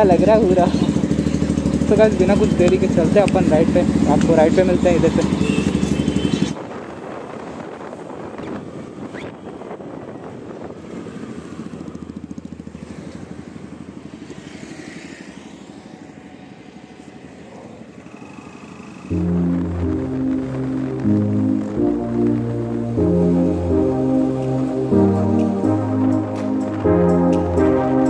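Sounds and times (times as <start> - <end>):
motorbike engine pulsing: 0.0 - 6.6, 11.2 - 15.6, 17.5 - 28.0
road noise: 0.0 - 28.0
background music: 19.1 - 28.0.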